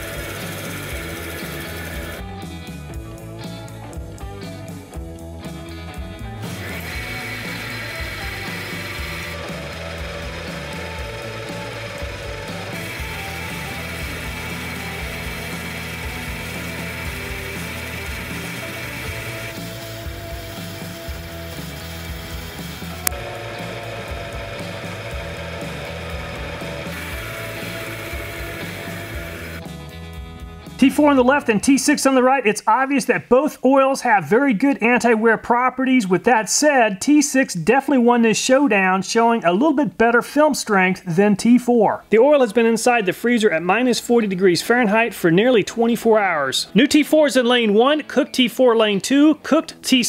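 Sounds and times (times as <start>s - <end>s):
machine motor whirring and grinding: 0.0s - 2.2s, 6.5s - 29.6s
background music: 0.0s - 38.1s, 42.0s - 50.0s.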